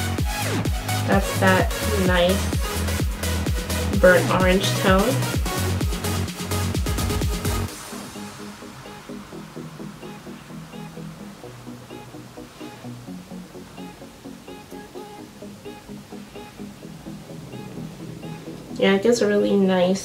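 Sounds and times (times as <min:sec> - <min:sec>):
soft electronic music: 0:00.0 - 0:20.0
woman speaking: 0:01.1 - 0:02.5, 0:04.0 - 0:05.3, 0:18.8 - 0:20.0.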